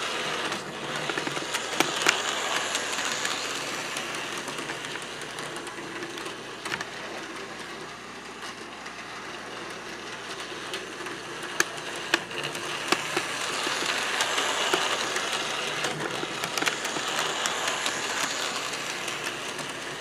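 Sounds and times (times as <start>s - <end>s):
model train motor whirring: 0.0s - 7.8s, 8.8s - 20.0s
wheels clicking over rail joints: 0.4s - 7.6s, 10.1s - 20.0s.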